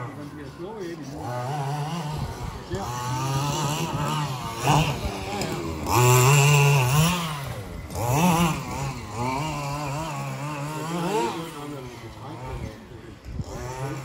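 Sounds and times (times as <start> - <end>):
two-stroke engine revving: 0.0 - 14.0.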